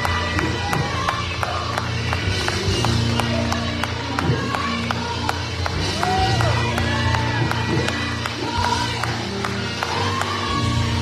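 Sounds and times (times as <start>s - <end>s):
singers' voices: 0.0s - 11.0s.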